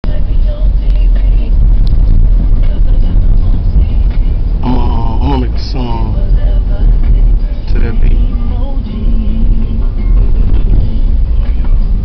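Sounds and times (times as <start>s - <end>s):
vehicle rumble inside cabin: 0.0s - 12.0s.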